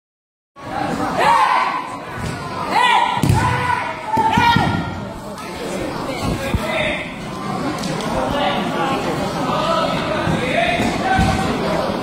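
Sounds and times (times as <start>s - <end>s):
loud shouts: 1.1s - 2.0s, 2.6s - 5.0s.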